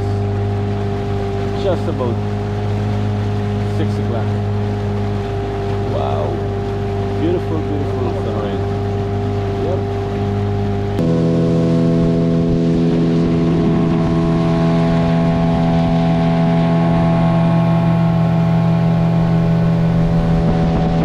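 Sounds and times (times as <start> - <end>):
outboard motor running: 0.0 - 21.0
rush of boat wake: 0.0 - 21.0.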